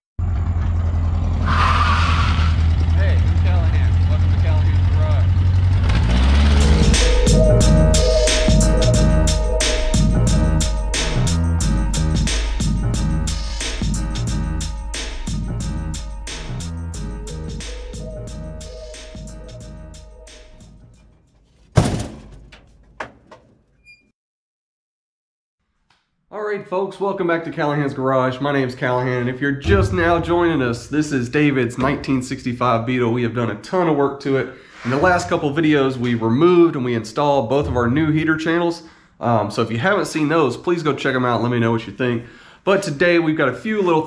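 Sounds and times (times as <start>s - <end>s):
car engine running: 2.4s - 8.3s, 20.6s - 23.6s
background music: 6.0s - 21.2s
smaller impact hits: 21.5s - 23.5s, 29.6s - 31.1s
heavy impact hit: 21.6s - 23.4s, 29.6s - 31.3s.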